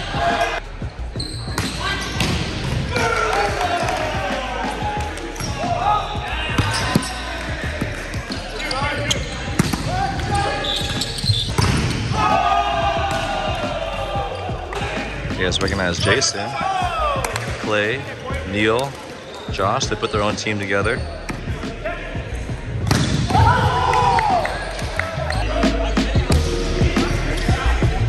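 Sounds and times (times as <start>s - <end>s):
men calling and shouting: 0.0s - 28.0s.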